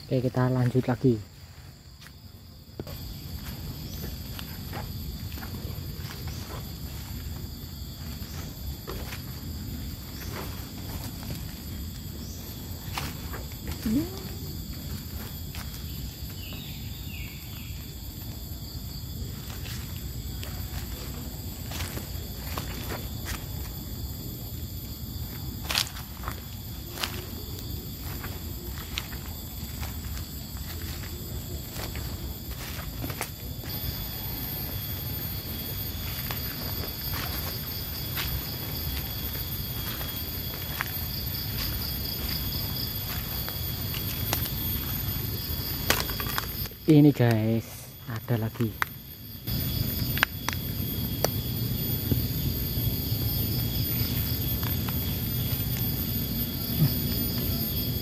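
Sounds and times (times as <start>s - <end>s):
high insect hum: 0.0s - 58.0s
footsteps crunching through leaves: 2.9s - 17.7s, 18.6s - 23.9s, 25.1s - 46.4s
twigs snapping: 45.8s - 46.6s.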